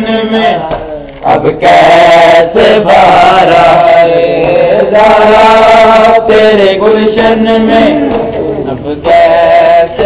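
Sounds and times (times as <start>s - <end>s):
male voices chanting lament: 0.0s - 10.0s.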